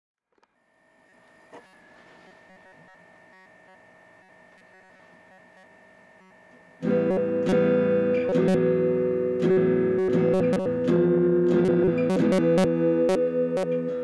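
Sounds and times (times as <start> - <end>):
electric guitar strokes: 0.5 - 14.0
faint steady tone: 0.7 - 10.8.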